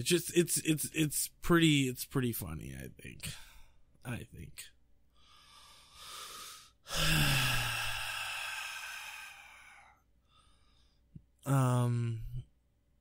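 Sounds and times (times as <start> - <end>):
man breathing in: 5.1 - 11.1
man sighing with low hum: 6.8 - 10.0, 11.4 - 12.5.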